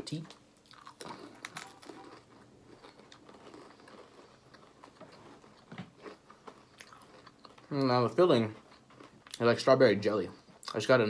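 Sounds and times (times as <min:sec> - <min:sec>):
chewing cookies with crunches: 0:00.1 - 0:11.0.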